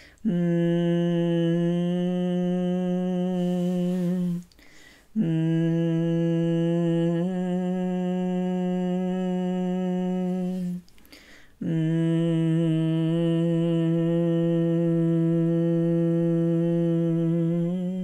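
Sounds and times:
woman breathing: 0.0 - 0.2, 3.4 - 5.2, 10.4 - 11.6
woman humming low notes: 0.2 - 4.5, 5.2 - 10.9, 11.6 - 18.0.

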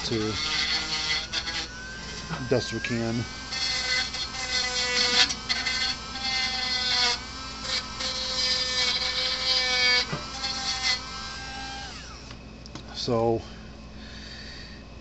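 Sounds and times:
rotary tool grinding metal: 0.0 - 12.4.

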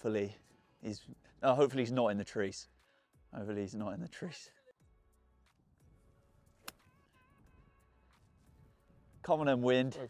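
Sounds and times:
golf club striking ball: 6.6 - 6.9.

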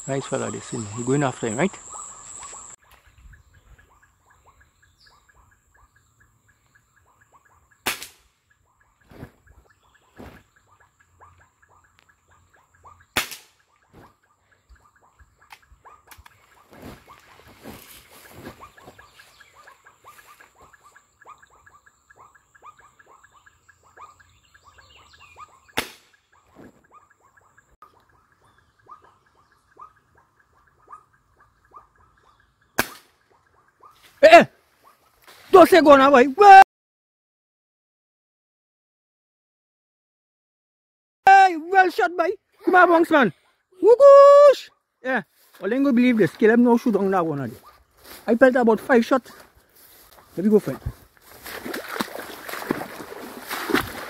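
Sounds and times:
high insect whine: 0.0 - 2.8
rapid pulsing chirp: 0.0 - 34.0.

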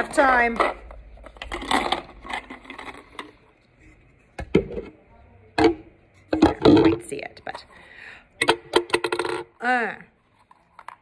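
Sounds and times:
objects rattling in plastic bottle: 0.0 - 3.6, 6.3 - 7.6.

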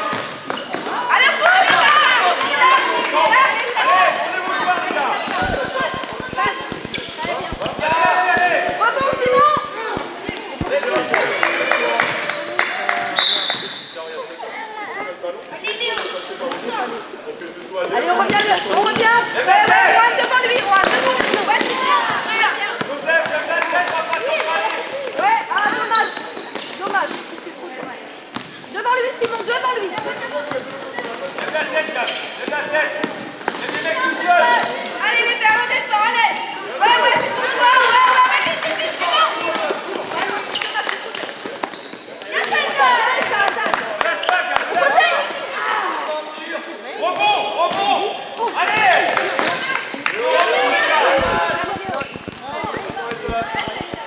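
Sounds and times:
basketball bouncing on court: 4.5 - 11.2, 51.2 - 54.0.

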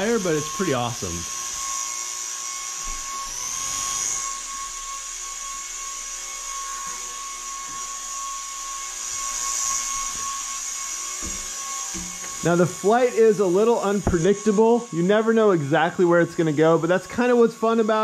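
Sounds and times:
small electric fans whining: 0.0 - 18.0.

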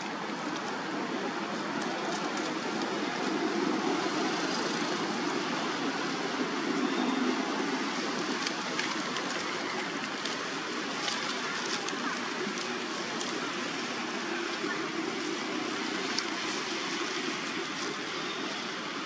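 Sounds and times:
dry leaves and twigs crackling: 0.0 - 19.0
steady rushing noise: 0.0 - 19.0.

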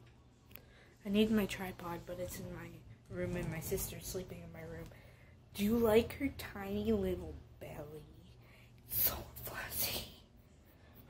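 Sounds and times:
person whispering: 8.3 - 10.4.

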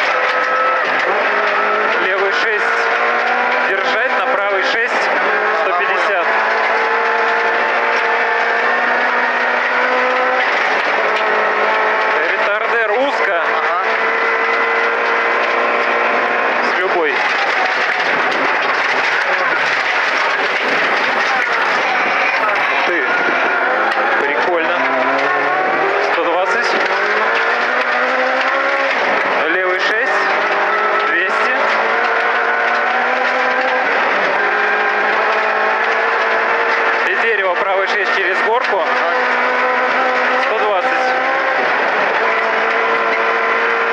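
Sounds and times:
rally car engine revving: 0.0 - 43.9.

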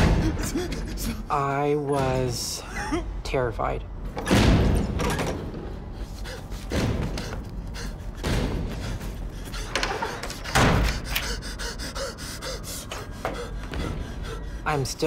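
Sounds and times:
man gasping: 0.0 - 1.4, 6.0 - 14.7.

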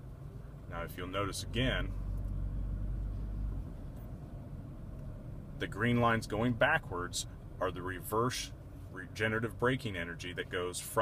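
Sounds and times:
road and tyre rumble: 0.0 - 11.0.

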